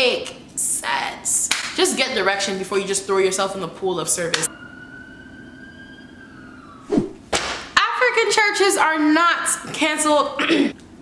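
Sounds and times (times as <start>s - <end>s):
high siren-like whistling tone: 4.4s - 7.3s.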